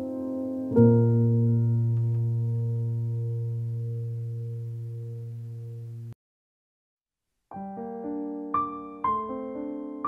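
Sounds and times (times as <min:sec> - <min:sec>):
low piano chord: 0:00.0 - 0:06.2.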